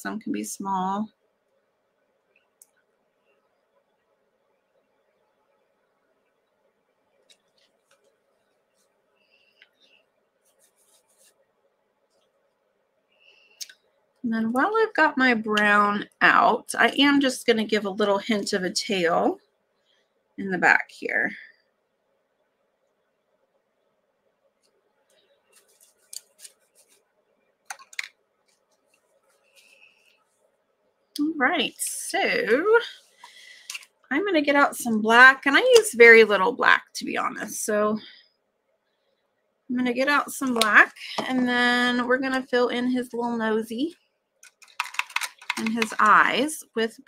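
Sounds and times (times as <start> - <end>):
painting supplies clicking on table: 27.7 - 28.2, 44.4 - 46.2.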